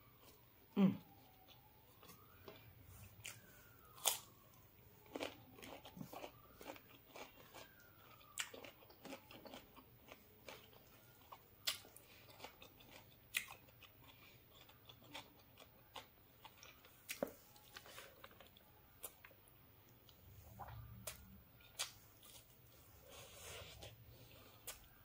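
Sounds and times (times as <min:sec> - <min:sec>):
chewing and crunching: 0:00.1 - 0:25.0.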